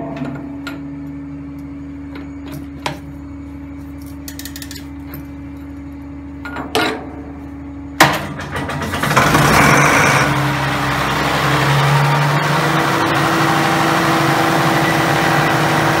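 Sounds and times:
diesel engine running: 8.2s - 16.0s.

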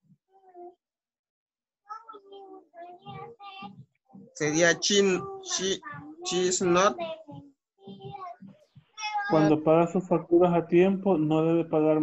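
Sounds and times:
person speaking quietly: 4.4s - 7.1s.

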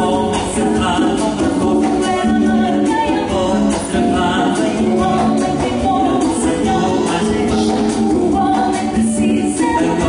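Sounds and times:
live band with singing: 0.0s - 10.0s.

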